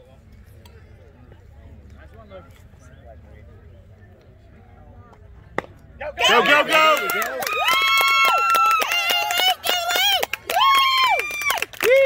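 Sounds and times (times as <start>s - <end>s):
faint distant voices: 0.0s - 10.3s
baseball bat hitting ball: 5.5s - 5.8s.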